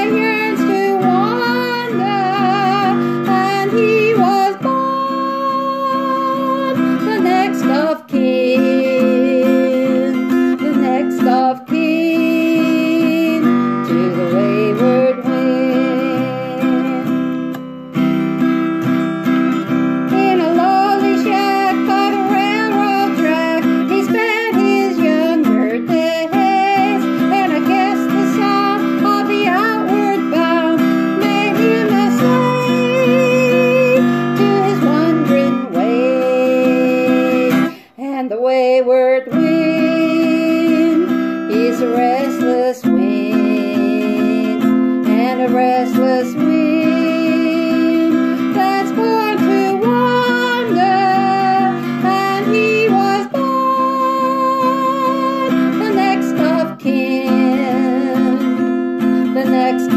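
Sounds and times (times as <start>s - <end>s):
strummed acoustic guitar: 0.0s - 59.9s
woman singing: 0.0s - 59.9s.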